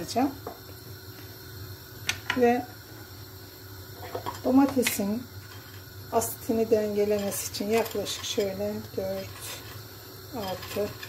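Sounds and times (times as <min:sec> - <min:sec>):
woman speaking: 0:00.0 - 0:00.4, 0:02.3 - 0:02.7, 0:04.4 - 0:05.3, 0:06.2 - 0:09.6, 0:10.4 - 0:11.0.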